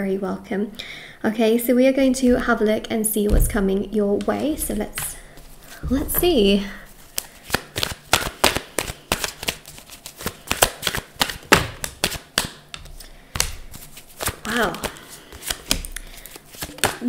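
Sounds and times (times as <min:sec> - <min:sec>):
cards being shuffled: 0:07.0 - 0:17.0.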